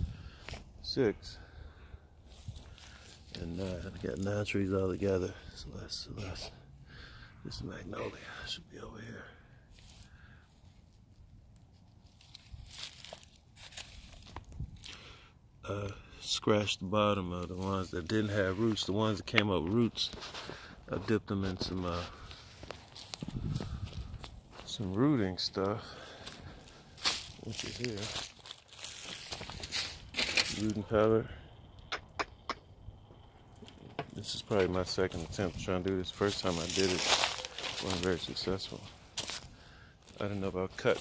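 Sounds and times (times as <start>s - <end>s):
rustling and crinkling handling: 2.3s - 6.6s, 9.7s - 15.0s, 17.4s - 31.1s, 33.6s - 41.0s
soft crackles: 9.7s - 15.1s, 17.4s - 31.8s, 33.0s - 41.0s
faint rustling: 25.6s - 31.0s.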